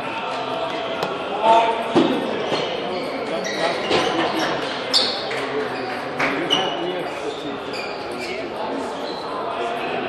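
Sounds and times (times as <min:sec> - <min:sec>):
murmur of people talking: 0:00.0 - 0:10.0.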